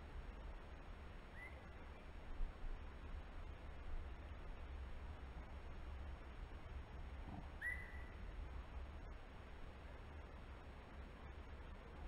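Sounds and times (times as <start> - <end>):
whistled bird call: 1.4 - 1.6, 7.6 - 8.1.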